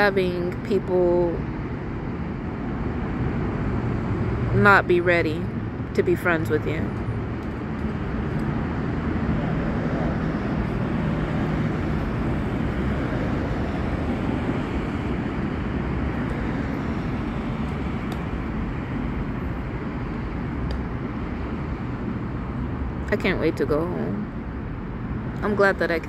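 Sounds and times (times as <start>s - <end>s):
low engine hum: 0.0s - 26.0s
rumble of passing vehicles: 0.0s - 26.0s.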